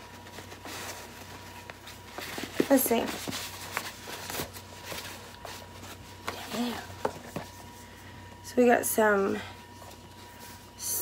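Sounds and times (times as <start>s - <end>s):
bag rustling and crinkling: 0.0s - 8.0s.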